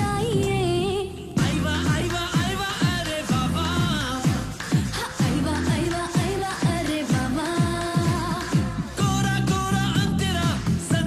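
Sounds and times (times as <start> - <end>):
pop dance beat: 0.0 - 11.0.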